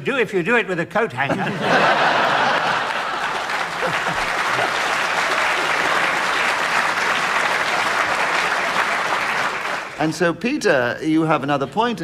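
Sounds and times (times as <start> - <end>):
audience laughing: 1.2 - 6.4
audience clapping: 1.6 - 10.2.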